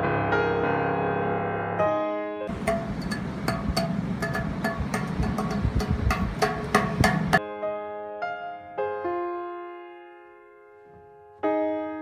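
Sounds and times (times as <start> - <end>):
hands drumming on railing: 2.5 - 7.4.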